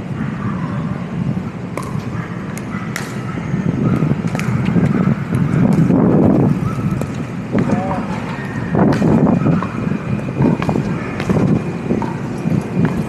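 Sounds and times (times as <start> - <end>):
street noise rumble: 0.0 - 13.0
paddles striking ball: 10.4 - 13.0.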